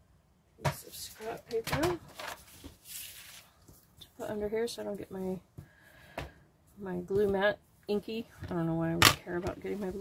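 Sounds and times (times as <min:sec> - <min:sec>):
paper rustling and sliding: 0:02.1 - 0:03.8.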